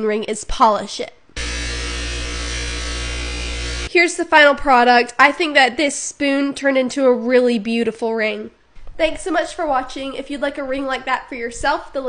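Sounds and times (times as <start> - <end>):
bench buffer motor hum and whine: 1.4 - 3.9.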